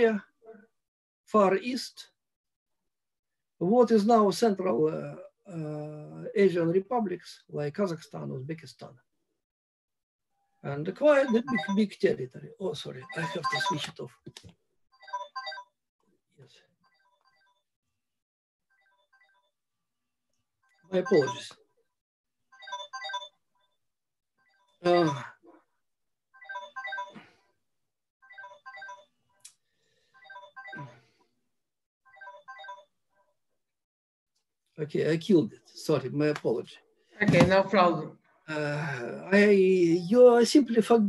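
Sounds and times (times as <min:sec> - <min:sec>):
phone ringtone melody: 0:11.1 - 0:11.8, 0:13.0 - 0:13.8, 0:15.0 - 0:15.7, 0:20.9 - 0:21.5, 0:22.5 - 0:23.4, 0:24.4 - 0:25.3, 0:26.4 - 0:27.2, 0:28.2 - 0:29.1, 0:30.1 - 0:31.0, 0:32.1 - 0:32.9.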